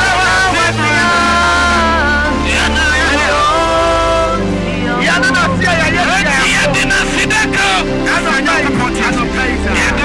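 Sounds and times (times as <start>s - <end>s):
man singing into microphone: 0.0s - 6.8s
keyboard backing: 0.0s - 10.0s.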